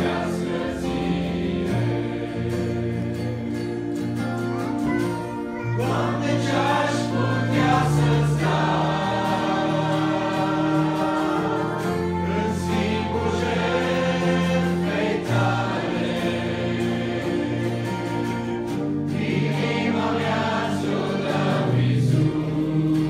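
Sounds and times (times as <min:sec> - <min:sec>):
choir singing in harmony: 0:00.0 - 0:04.3, 0:05.8 - 0:23.0
keyboard: 0:00.0 - 0:23.0
strummed acoustic guitar: 0:00.0 - 0:23.0.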